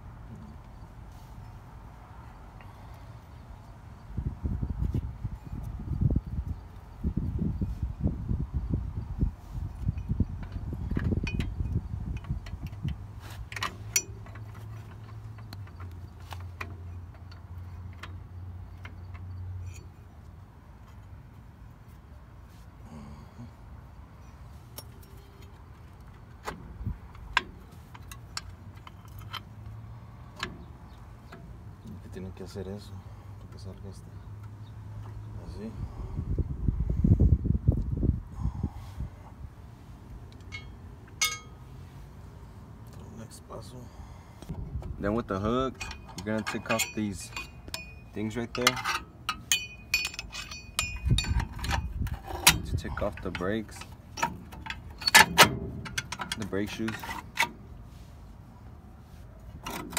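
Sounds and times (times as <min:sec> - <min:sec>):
tools clinking on metal: 0:09.9 - 0:20.0, 0:40.4 - 0:41.6, 0:45.4 - 0:57.6.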